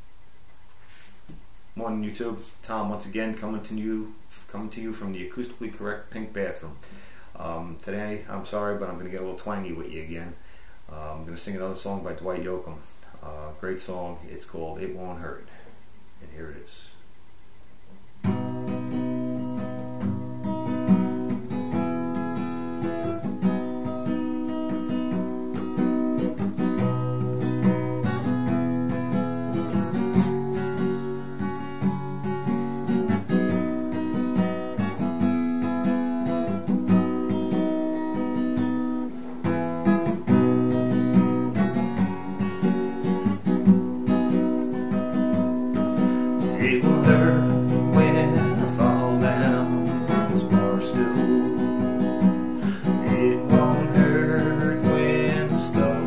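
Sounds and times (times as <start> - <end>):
acoustic guitar strumming: 18.2 - 56.0
man singing: 46.4 - 56.0.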